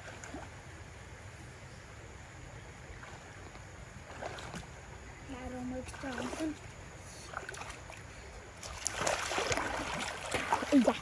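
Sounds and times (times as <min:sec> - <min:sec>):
water sloshing and splashing: 0:00.0 - 0:00.7, 0:02.8 - 0:11.0
stream water lapping: 0:00.0 - 0:11.0.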